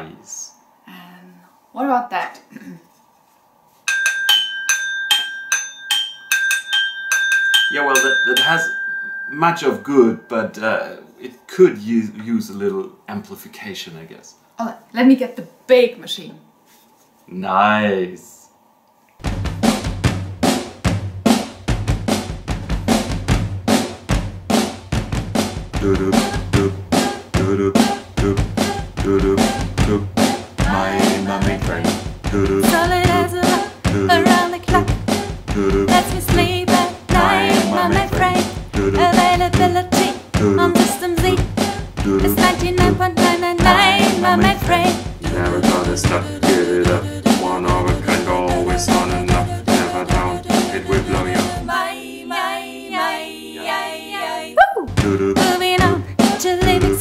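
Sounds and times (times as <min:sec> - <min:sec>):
spoon tapping mug and glass: 0:03.9 - 0:10.3
high ringing tone: 0:03.9 - 0:11.2
drum machine beat: 0:19.2 - 0:51.8, 0:54.8 - 0:57.0.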